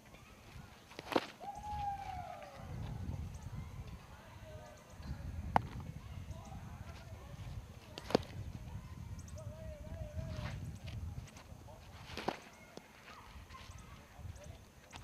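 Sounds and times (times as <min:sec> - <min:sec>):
baseball smacking catcher's mitt: 0:07.9 - 0:08.4, 0:12.0 - 0:12.9.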